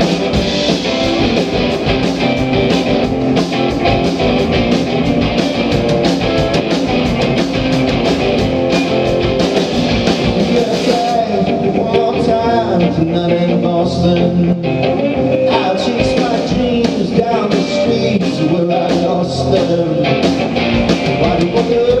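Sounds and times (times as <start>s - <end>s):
drum kit beating steady rhythm: 0.0s - 22.0s
electric guitar strummed hard: 0.0s - 22.0s.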